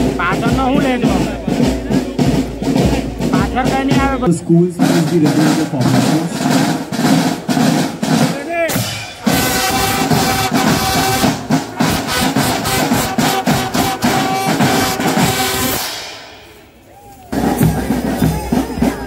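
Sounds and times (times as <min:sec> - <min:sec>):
snare drum rhythm: 0:00.0 - 0:16.6, 0:17.3 - 0:19.0
held brass note: 0:09.2 - 0:16.6.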